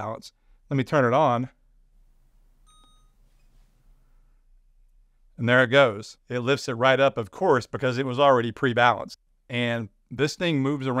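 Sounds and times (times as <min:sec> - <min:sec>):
short high electronic beep: 0:02.6 - 0:03.4.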